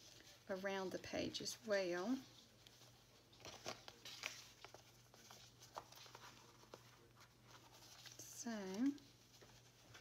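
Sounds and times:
person speaking: 0:00.0 - 0:09.2
paper and lace rustling: 0:00.0 - 0:10.0.

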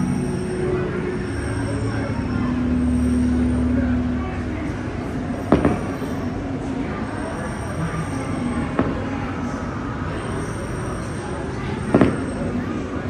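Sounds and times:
firework bang: 0:05.5 - 0:06.2, 0:08.6 - 0:09.2, 0:11.9 - 0:12.6.

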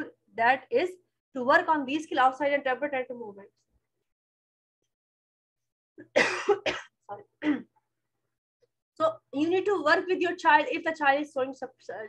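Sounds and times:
woman coughing: 0:06.0 - 0:07.8.

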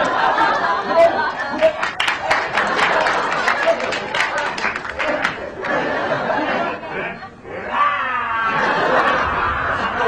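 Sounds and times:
audience laughing: 0:00.0 - 0:07.7, 0:08.4 - 0:10.0
audience murmuring: 0:00.0 - 0:07.8.

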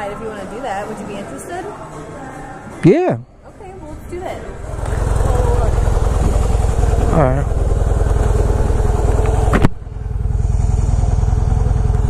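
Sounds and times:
motorcycle engine idling: 0:04.6 - 0:12.0.

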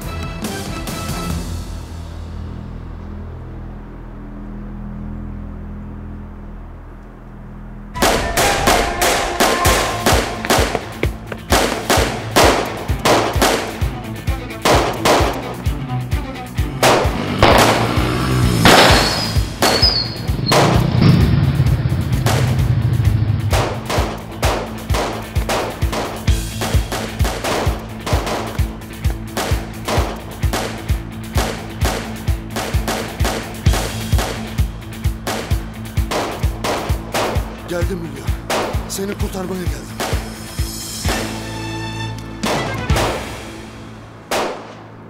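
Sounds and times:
low tense music drone: 0:00.8 - 0:45.0
rapid pistol shots: 0:08.0 - 0:13.9, 0:14.6 - 0:15.5, 0:16.8 - 0:21.0, 0:23.5 - 0:28.7, 0:29.3 - 0:37.6, 0:38.4 - 0:38.9, 0:40.0 - 0:40.4, 0:44.3 - 0:44.8.

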